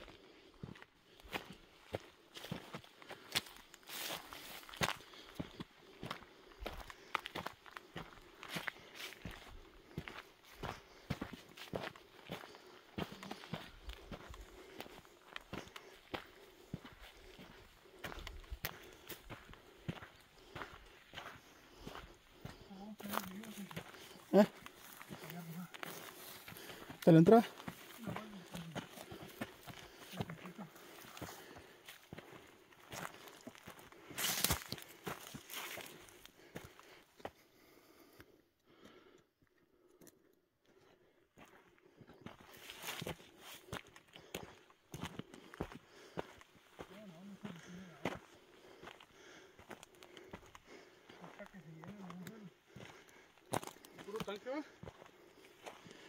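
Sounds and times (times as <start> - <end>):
footsteps on gravel: 0.6 - 37.4, 41.4 - 56.0
twigs and brush crackling: 0.7 - 37.0, 41.4 - 56.0
faint voice: 27.1 - 29.0.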